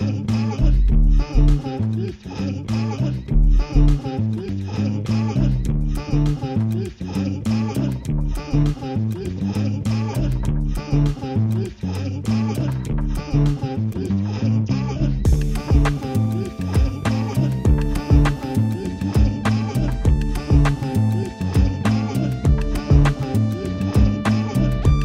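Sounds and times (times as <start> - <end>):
deep synth bass line: 0.0 - 25.0
synth melodic figure: 15.3 - 25.0.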